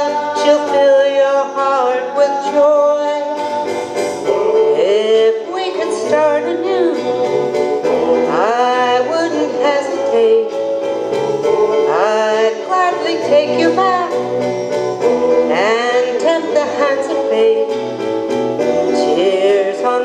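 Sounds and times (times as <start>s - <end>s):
woman singing into microphone: 0.0s - 10.6s, 11.6s - 14.2s, 15.1s - 17.8s, 18.8s - 20.0s
instrumental accompaniment: 0.0s - 20.0s.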